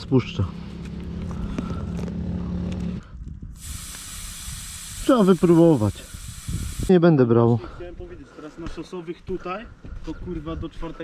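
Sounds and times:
air hissing from tyre valve: 3.6s - 6.9s.

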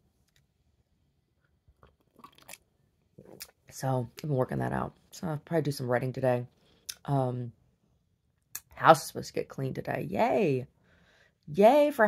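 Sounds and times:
swallowing: 1.8s - 2.6s.

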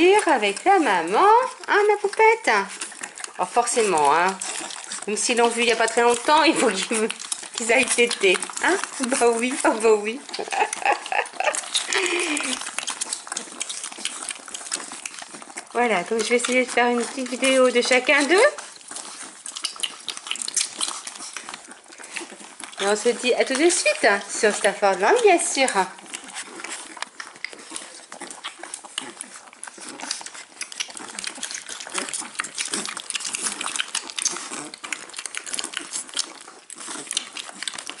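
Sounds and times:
puppies suckling: 0.0s - 38.0s.

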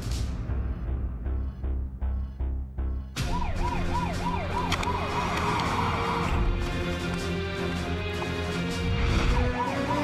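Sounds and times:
dramatic film score: 0.0s - 10.0s
police siren wailing: 3.2s - 6.5s, 9.3s - 10.0s.

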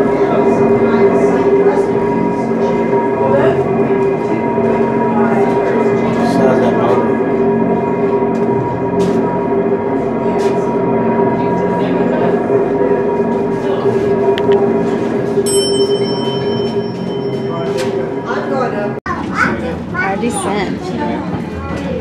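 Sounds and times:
voices: 10.0s - 22.0s.

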